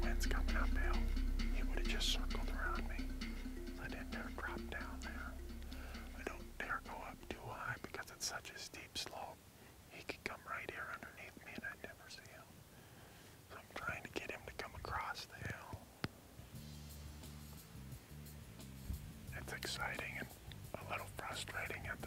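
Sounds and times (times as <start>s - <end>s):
man whispering: 0.0s - 3.1s, 3.8s - 12.6s, 13.5s - 15.9s, 19.3s - 22.0s
soft background music: 0.0s - 9.3s, 10.0s - 11.0s, 16.4s - 22.0s.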